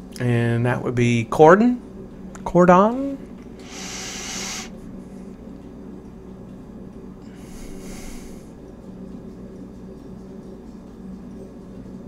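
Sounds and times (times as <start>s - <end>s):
faint steady hum: 0.0s - 12.0s
person breathing out: 3.6s - 4.7s, 7.3s - 8.5s.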